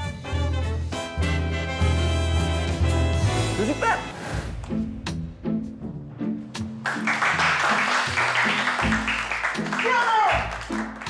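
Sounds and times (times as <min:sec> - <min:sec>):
music with repeating beat: 0:06.6 - 0:11.0
children applauding: 0:06.8 - 0:11.0.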